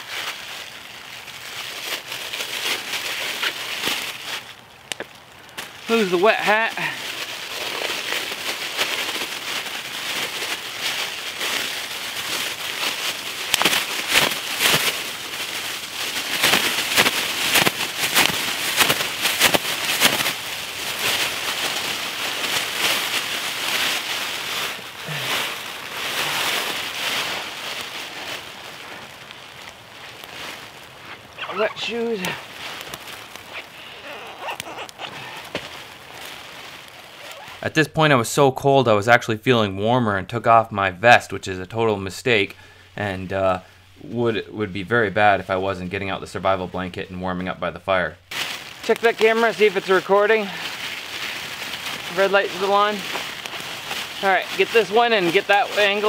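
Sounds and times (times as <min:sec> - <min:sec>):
gear rustling on dry leaves: 0:00.0 - 0:37.8, 0:48.2 - 0:56.0.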